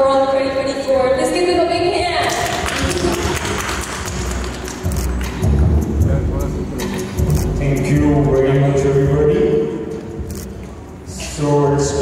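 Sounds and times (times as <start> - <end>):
people clapping: 2.2 - 5.8.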